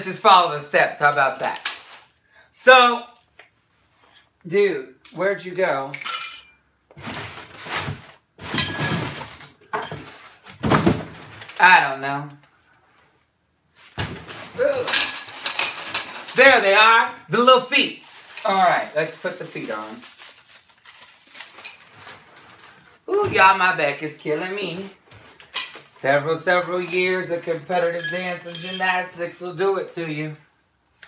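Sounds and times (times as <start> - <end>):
cardboard scraping and rustling: 7.0 - 11.5.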